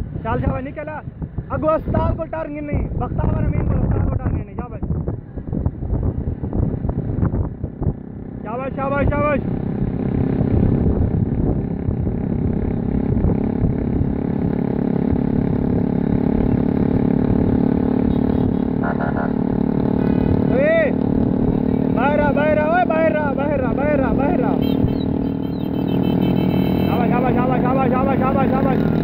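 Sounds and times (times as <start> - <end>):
wind rush: 0.0 - 17.9
motorcycle engine running: 4.9 - 29.0.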